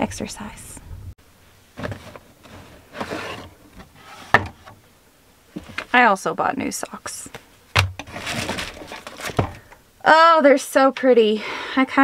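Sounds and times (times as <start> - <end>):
cardboard rustling scrape: 1.8 - 4.8, 5.6 - 6.0, 8.0 - 9.7.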